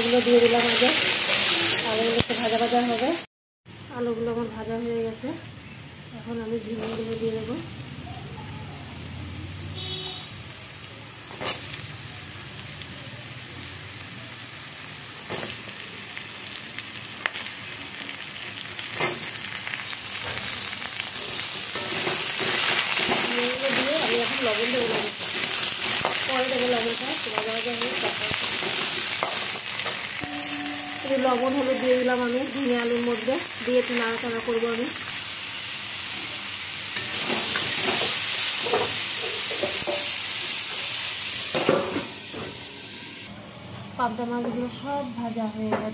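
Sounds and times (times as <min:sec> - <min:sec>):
vegetables sizzling in hot oil: 0:00.0 - 0:43.3.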